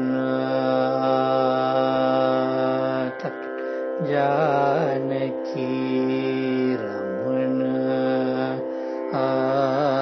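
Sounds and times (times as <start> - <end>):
man singing a long vowel: 0.0 - 10.0.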